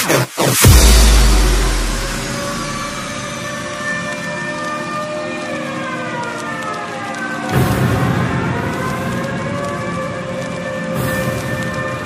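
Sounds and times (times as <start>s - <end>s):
deep bass boom: 0.6s - 3.9s.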